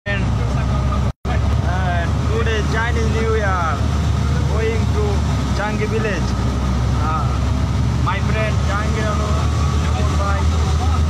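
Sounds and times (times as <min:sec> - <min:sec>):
boat engine rumbling: 0:00.0 - 0:11.0
voices: 0:00.1 - 0:11.0.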